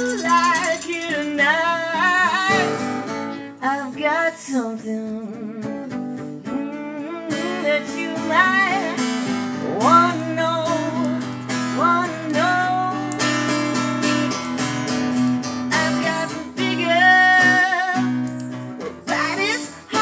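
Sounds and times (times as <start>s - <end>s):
woman singing wordless notes: 0.0s - 2.8s, 3.6s - 13.2s, 15.7s - 18.2s
acoustic guitar strumming: 0.0s - 20.0s.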